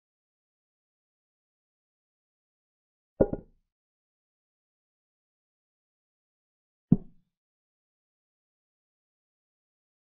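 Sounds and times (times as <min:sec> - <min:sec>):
double wooden knock sound effect: 0:03.2 - 0:03.5.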